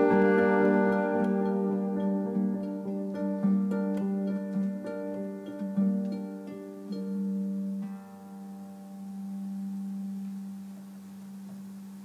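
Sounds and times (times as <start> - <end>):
chamber ensemble holding low note: 0.0 - 12.0.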